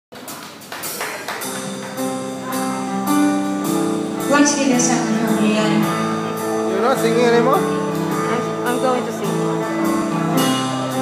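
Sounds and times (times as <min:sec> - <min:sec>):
live band playing: 0:00.2 - 0:11.0.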